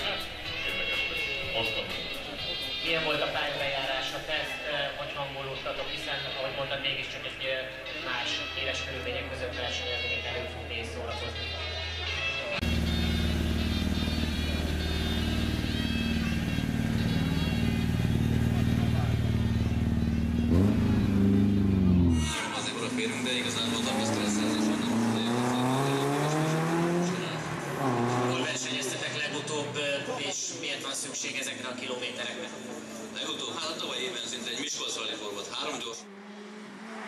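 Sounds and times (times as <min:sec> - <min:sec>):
rally car engine revving: 0:12.6 - 0:30.3, 0:31.0 - 0:37.0.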